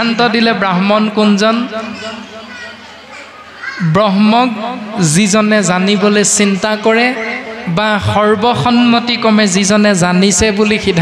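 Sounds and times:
man talking over loudspeaker: 0.0 - 2.8, 3.8 - 11.0
faint children chattering: 0.0 - 7.8.

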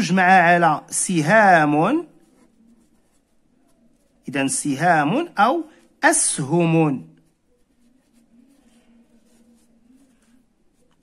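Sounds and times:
felt-tip marker writing on paper: 1.2 - 4.3, 7.2 - 11.0.

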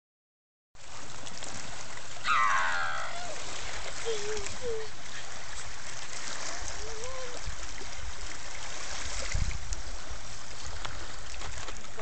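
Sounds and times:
lake water lapping on rocks: 0.8 - 12.0
drawn-out falling call: 2.2 - 3.4.

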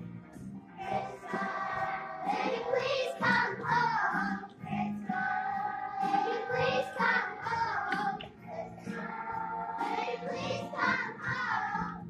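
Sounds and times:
children singing: 0.8 - 12.0.

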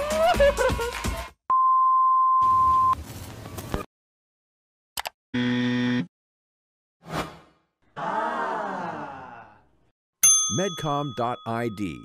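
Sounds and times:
music: 0.0 - 1.4.

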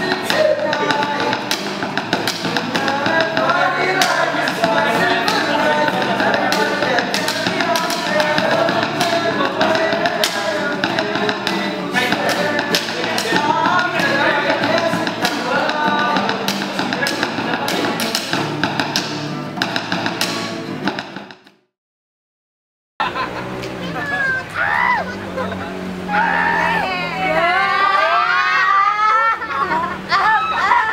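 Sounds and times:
people singing: 0.0 - 19.0
acoustic guitar strummed: 0.0 - 21.5.

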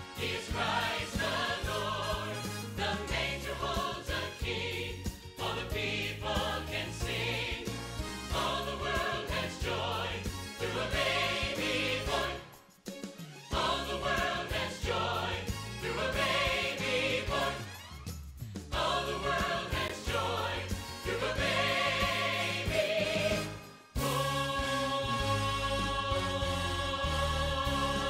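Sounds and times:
choir singing: 0.0 - 12.8, 13.5 - 17.8, 18.7 - 28.0.

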